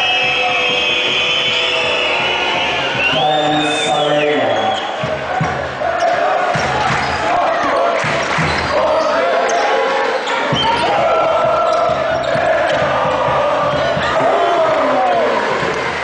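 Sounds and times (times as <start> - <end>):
arena crowd din: 0.0 - 16.0.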